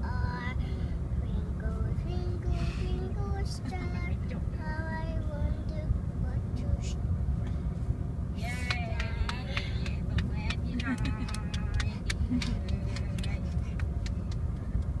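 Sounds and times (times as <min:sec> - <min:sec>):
car road rumble: 0:00.0 - 0:15.0.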